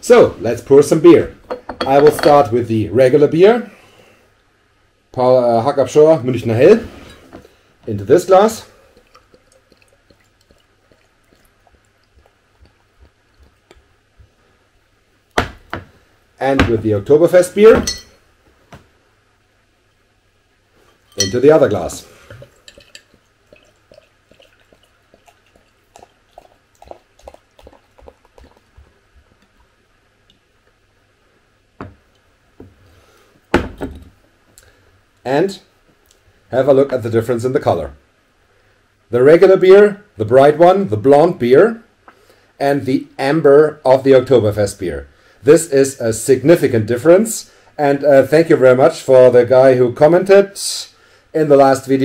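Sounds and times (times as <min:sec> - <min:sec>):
man talking: 0:00.0 - 0:03.7, 0:05.2 - 0:06.9, 0:07.8 - 0:08.8, 0:16.4 - 0:17.9, 0:21.2 - 0:22.2, 0:35.2 - 0:35.7, 0:36.5 - 0:38.0, 0:42.6 - 0:52.0
glass bottles clinking: 0:01.4 - 0:02.5, 0:17.8 - 0:18.2, 0:20.9 - 0:21.6, 0:22.3 - 0:24.5.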